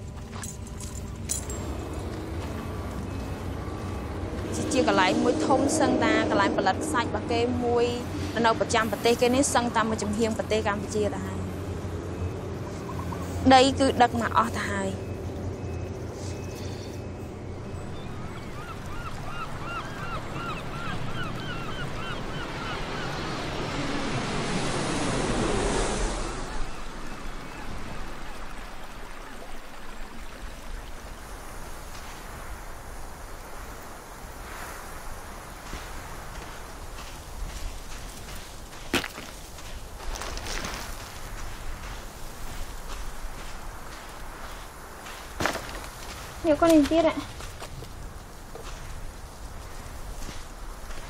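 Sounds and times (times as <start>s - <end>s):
water rushing: 0.0s - 15.1s, 17.5s - 51.0s.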